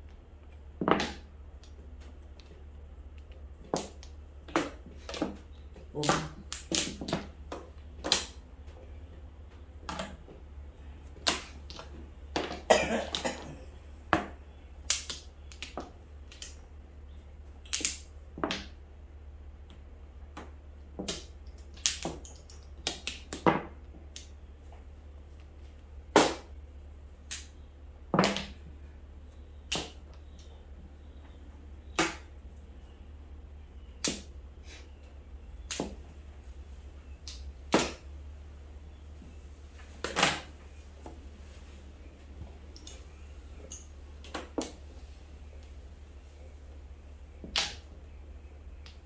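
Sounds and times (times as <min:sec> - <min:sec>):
low steady hum: 0:00.0 - 0:49.0.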